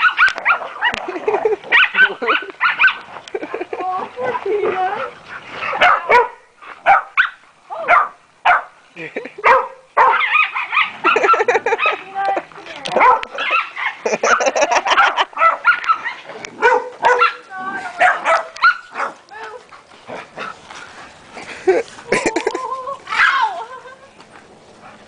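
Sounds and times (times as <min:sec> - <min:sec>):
dogs barking and growling: 0:00.0 - 0:23.6.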